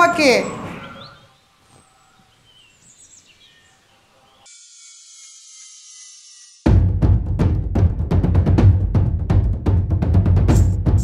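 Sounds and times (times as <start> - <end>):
bird chirps: 0.0 - 6.6
faint outdoor ambience: 0.0 - 6.7
thin high hiss: 1.6 - 6.7.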